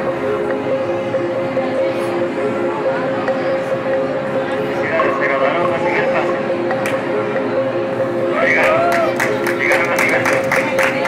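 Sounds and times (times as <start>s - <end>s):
background music: 0.0s - 11.0s
indistinct voices talking: 0.0s - 11.0s.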